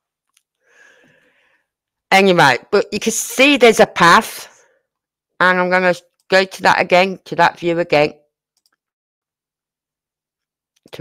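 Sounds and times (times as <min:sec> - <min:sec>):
person speaking: 0:02.1 - 0:04.5, 0:05.4 - 0:08.2
computer mouse clicks: 0:08.5 - 0:08.9.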